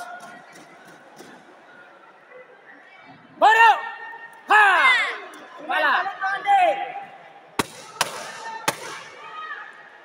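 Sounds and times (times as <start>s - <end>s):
sharp smacks with echo: 7.6s - 9.0s.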